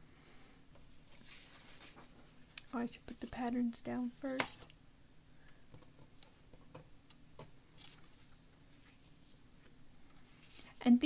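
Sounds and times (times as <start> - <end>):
paper sheets rustling: 1.0 - 4.6, 7.1 - 11.0.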